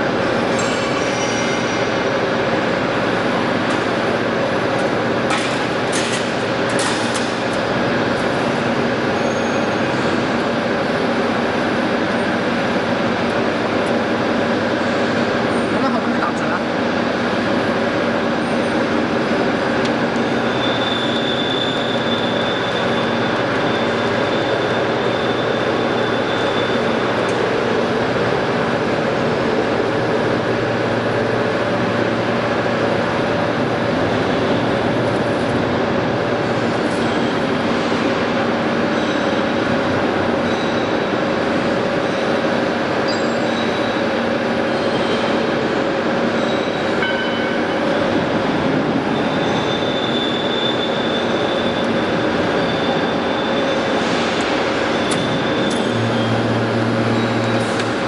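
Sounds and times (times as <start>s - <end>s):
press machine drone with whine: 0.0s - 58.0s.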